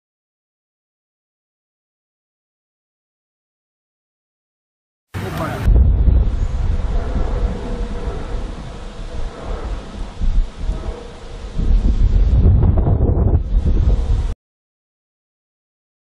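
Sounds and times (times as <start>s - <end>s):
deep thunder rumble: 5.2s - 14.4s.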